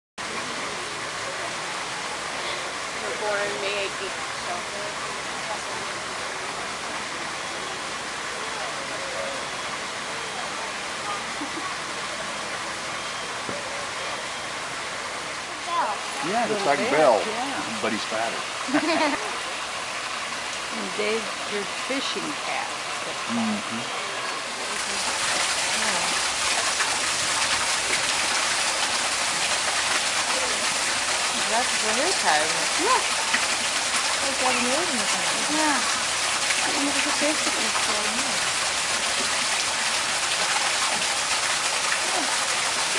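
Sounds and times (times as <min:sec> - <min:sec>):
running water rushing: 0:00.2 - 0:42.9.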